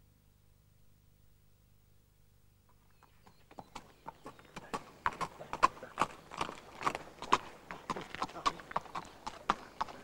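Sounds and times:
horse hooves clopping on pavement: 3.0s - 10.0s.

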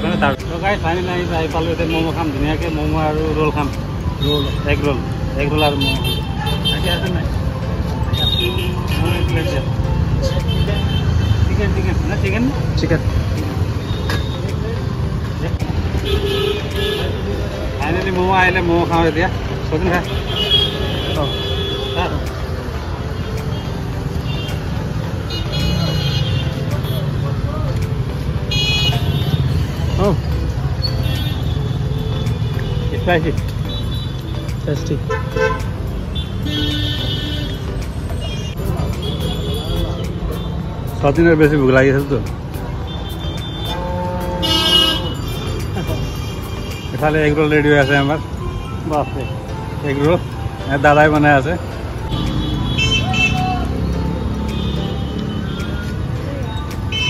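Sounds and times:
traffic engine and road rumble: 0.0s - 57.0s
vehicle horn toots: 43.4s - 45.3s.

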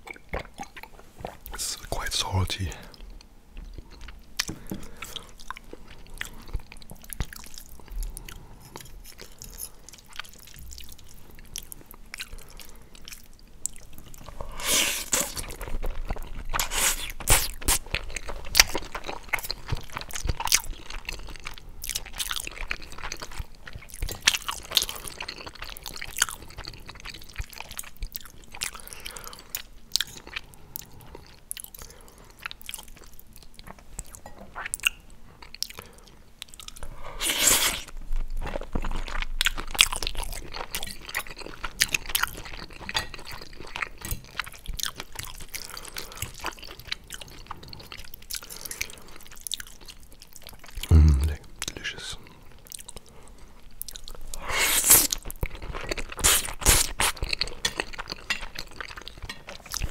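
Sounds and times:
wet chewing with crackling clicks: 0.0s - 1.7s, 2.9s - 59.9s.

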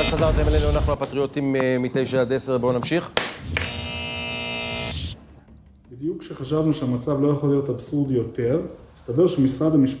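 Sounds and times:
wooden gavel knock: 2.8s - 3.7s.

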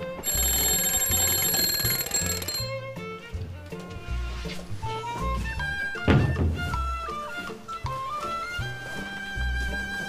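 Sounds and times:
alarm bell ringing: 0.0s - 2.8s.

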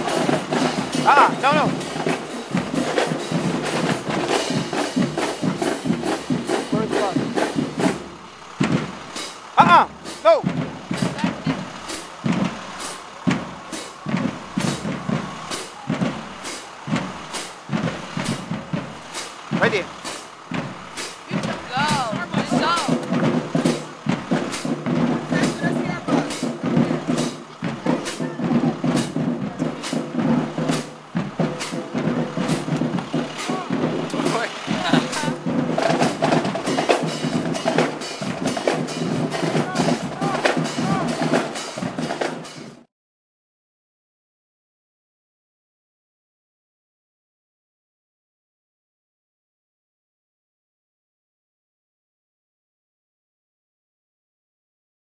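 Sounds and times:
people chattering: 0.0s - 3.3s, 8.2s - 41.7s
voices calling out: 0.0s - 42.8s
bus engine idling: 0.0s - 42.9s
marching drumline cadence: 0.0s - 42.9s.

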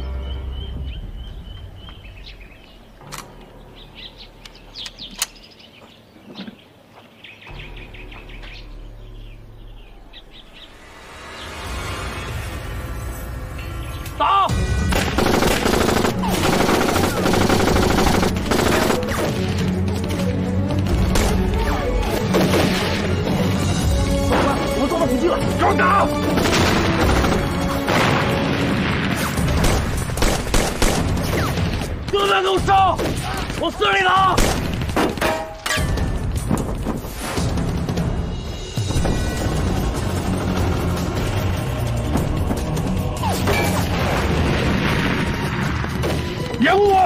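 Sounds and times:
birds chirping: 0.0s - 16.2s
dramatic music: 7.5s - 33.6s, 34.2s - 47.0s
heavy gunfire: 14.9s - 19.2s, 26.2s - 31.9s
machine guns firing: 14.9s - 19.4s, 26.2s - 28.4s, 29.5s - 31.9s.

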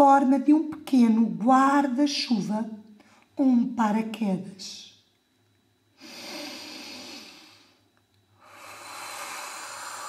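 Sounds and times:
woman breathing into microphone: 8.4s - 10.0s.

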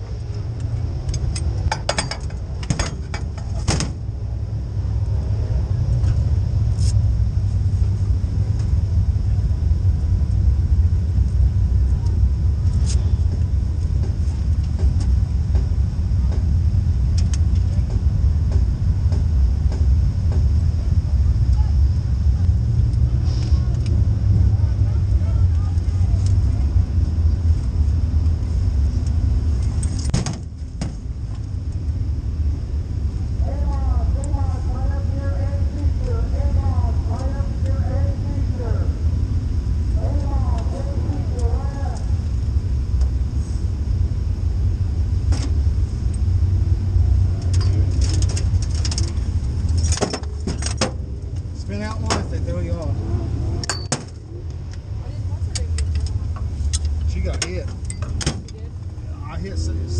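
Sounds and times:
race car engine rumble: 0.0s - 59.9s
sharp clicks and knocks: 0.6s - 4.0s.

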